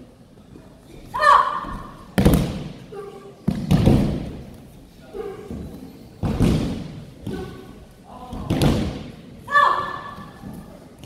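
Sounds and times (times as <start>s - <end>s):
person shouting: 1.2s - 1.7s, 9.5s - 10.2s.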